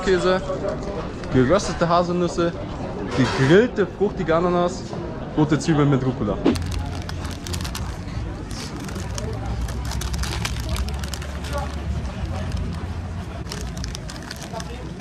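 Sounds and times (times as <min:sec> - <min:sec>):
faint background voices: 0:00.0 - 0:15.0
low street rumble: 0:00.0 - 0:15.0
paper wrapper crinkling: 0:06.5 - 0:15.0.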